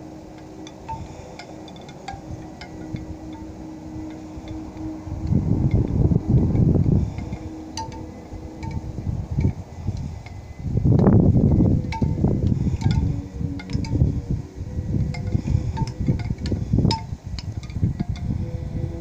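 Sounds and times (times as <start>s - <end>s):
light chime-like tinkles: 0.0s - 19.0s
wind noise on microphone: 0.0s - 19.0s.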